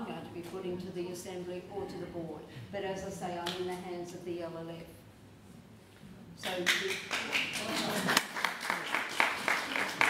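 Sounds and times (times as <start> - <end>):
audience clapping: 6.4 - 10.0.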